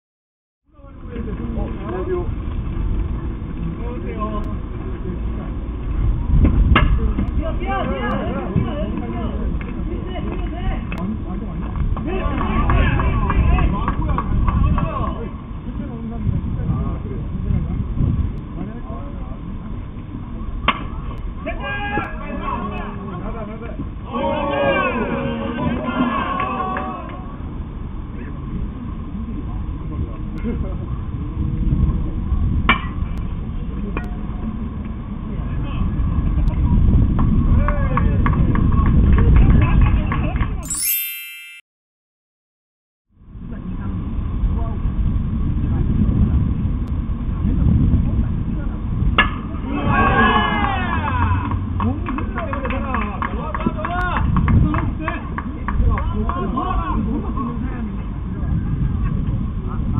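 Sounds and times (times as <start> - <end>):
steady low rumble: 0.7 - 21.5, 43.2 - 49.7.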